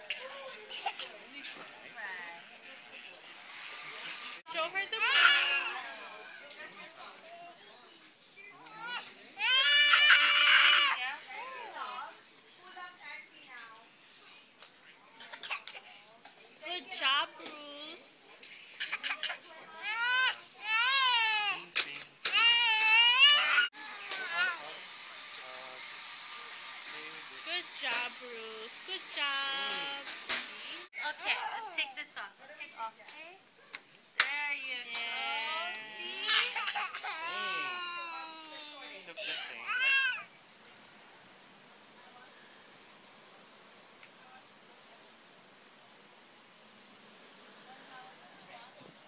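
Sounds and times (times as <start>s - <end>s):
toddler crying: 8.8s - 11.0s, 19.8s - 21.6s, 22.3s - 24.6s, 35.6s - 40.2s.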